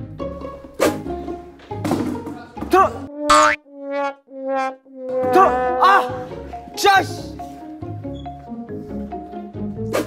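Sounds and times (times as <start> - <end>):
comic boing sound effect: 3.1 - 6.2
held brass-like notes: 3.1 - 7.2
person exclaiming: 5.3 - 7.2.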